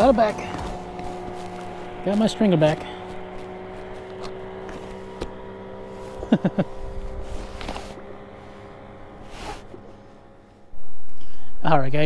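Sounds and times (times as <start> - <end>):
boat motor humming: 0.0 - 11.8.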